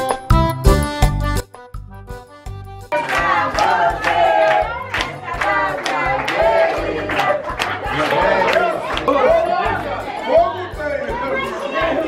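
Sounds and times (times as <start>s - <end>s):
music playing: 0.0s - 12.0s
people talking over one another: 3.0s - 12.0s.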